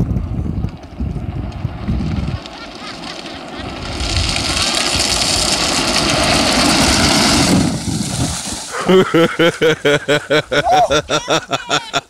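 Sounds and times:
toy car wheels rolling on concrete: 0.0 - 9.0
people laughing: 2.4 - 3.8, 8.7 - 12.0.

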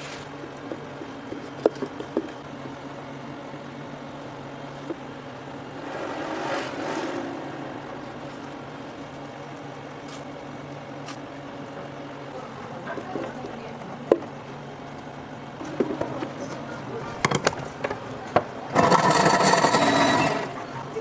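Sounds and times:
low mechanical hum: 0.0 - 21.0.

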